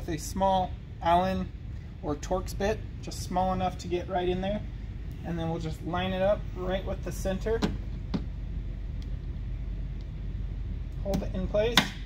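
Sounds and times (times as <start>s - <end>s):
low workshop hum: 0.0s - 12.0s.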